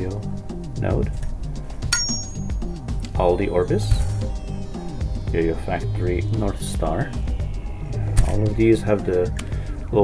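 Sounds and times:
background music: 0.0s - 10.0s
metal yo-yos clinking: 1.9s - 2.6s.

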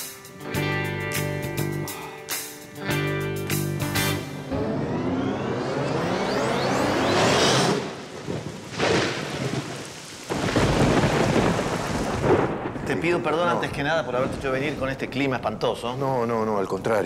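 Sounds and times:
heavy rain: 7.6s - 15.1s
thunder rumbling: 7.8s - 16.3s.

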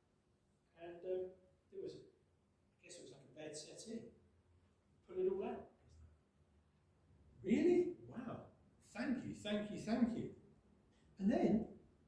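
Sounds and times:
man speaking: 0.8s - 2.0s, 2.8s - 4.2s, 5.0s - 5.8s, 7.4s - 10.4s, 11.2s - 11.8s.

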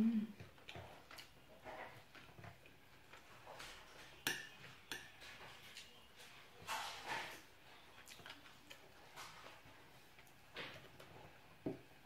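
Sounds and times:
cutlery scraping plate: 6.6s - 7.5s.

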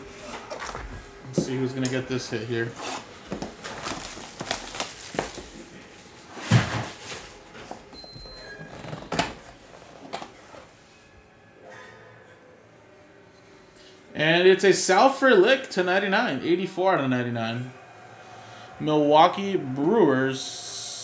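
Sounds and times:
cardboard box scraping and knocks: 6.4s - 7.0s.

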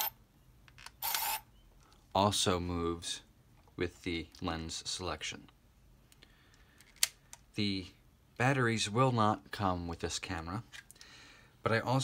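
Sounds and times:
camera lens motor whirring: 1.0s - 1.4s.

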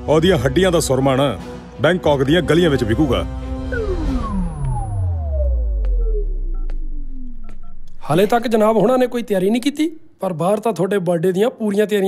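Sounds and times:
falling-pitch tone: 3.6s - 8.1s.

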